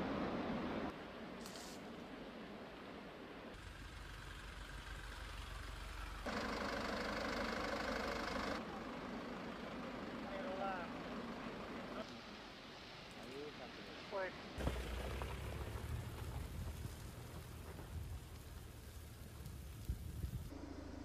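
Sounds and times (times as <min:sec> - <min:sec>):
vehicle engine idling: 0:03.6 - 0:12.0.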